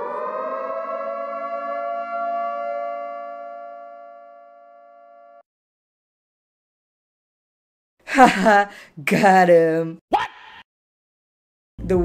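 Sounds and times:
electronic tone chord: 0.0s - 5.4s.

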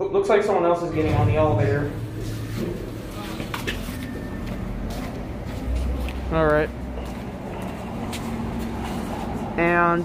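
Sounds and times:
steady low rumble: 0.8s - 5.7s.

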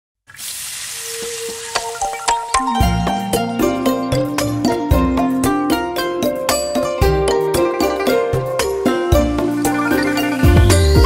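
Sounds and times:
steady sizzle: 0.3s - 2.6s.

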